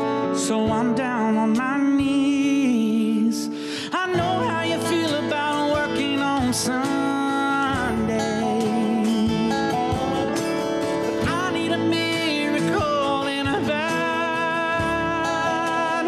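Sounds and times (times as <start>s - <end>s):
cajon drum: 0.0s - 2.7s, 4.0s - 16.0s
acoustic guitar: 0.0s - 16.0s
keyboard: 0.0s - 16.0s
man singing: 0.0s - 16.0s
steel guitar: 0.0s - 16.0s.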